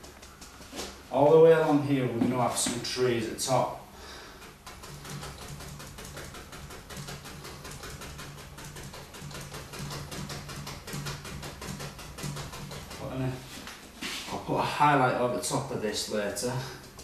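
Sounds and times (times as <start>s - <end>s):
brush tapping paint onto canvas: 4.2s - 14.4s.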